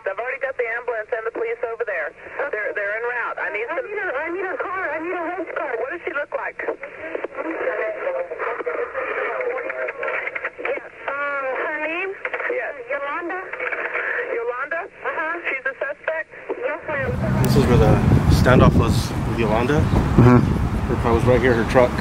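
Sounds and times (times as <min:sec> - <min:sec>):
people talking over telephone: 0:00.0 - 0:22.0.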